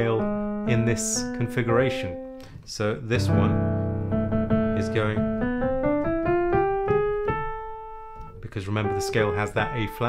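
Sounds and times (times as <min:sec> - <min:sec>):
piano notes stepping upward: 0:00.0 - 0:10.0.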